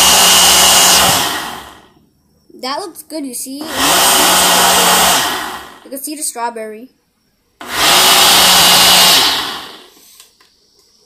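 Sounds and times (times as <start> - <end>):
blender motor blending ice: 0.0 - 1.9, 3.6 - 5.8, 7.6 - 10.0.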